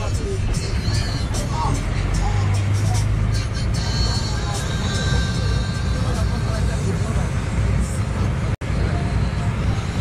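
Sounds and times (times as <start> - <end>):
music playing: 0.0 - 7.2
vehicle engine and tyres rumble: 0.0 - 10.0.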